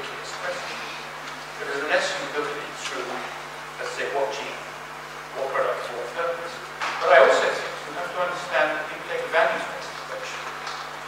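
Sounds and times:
man speaking into a microphone: 0.0 - 4.7, 5.3 - 10.5.

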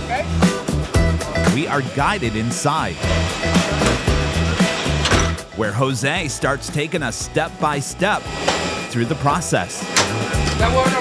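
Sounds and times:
background music with beat and bass: 0.0 - 11.0.

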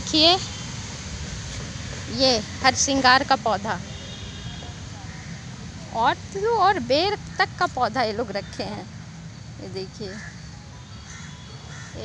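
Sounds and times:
crow cawing: 5.0 - 5.5, 10.1 - 12.0.

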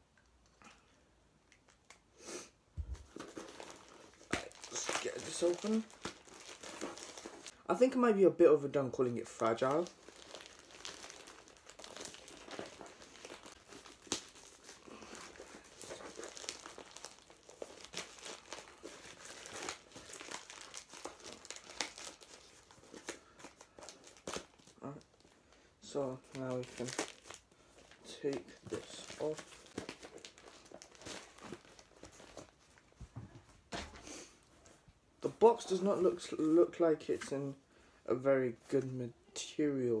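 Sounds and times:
plastic bag crinkling and tearing: 2.8 - 7.6, 9.3 - 32.9.

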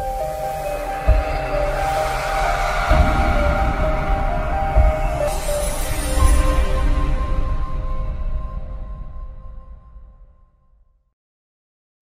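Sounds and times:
low bass rumble: 0.0 - 9.9
sustained synth chords: 0.0 - 10.2
deep boom: 1.1 - 9.4.

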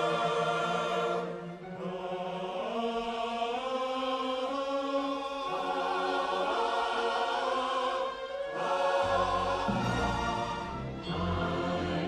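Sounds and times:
choir singing sustained chords: 0.0 - 12.0
orchestral film score: 0.0 - 12.0.

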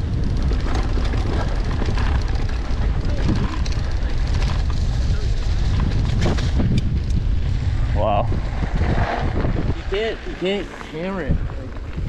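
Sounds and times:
bike clicks and rattles: 0.0 - 7.7, 8.5 - 12.0
wind buffeting microphone: 0.0 - 12.0.

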